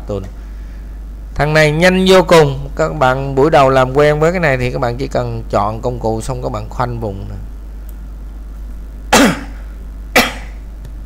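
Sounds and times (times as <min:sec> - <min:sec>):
man coughing: 0:09.1 - 0:10.6.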